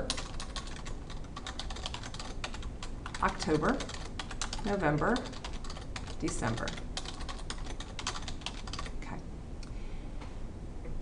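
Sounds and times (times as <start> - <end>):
computer keyboard keys clicking: 0.0 - 9.0.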